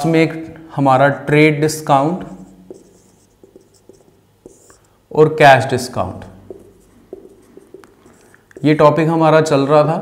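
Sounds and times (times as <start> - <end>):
marker pen writing on whiteboard: 1.1 - 5.4, 6.2 - 9.2.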